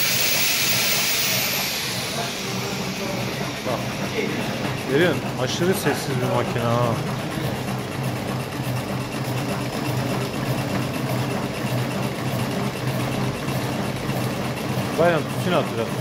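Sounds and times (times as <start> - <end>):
fast light mechanical clatter: 0.0 - 16.0
machine motor hum: 0.0 - 16.0.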